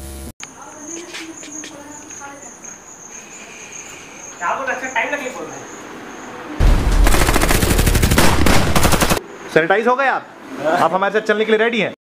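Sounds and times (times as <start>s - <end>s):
insect trilling: 0.4s - 6.6s.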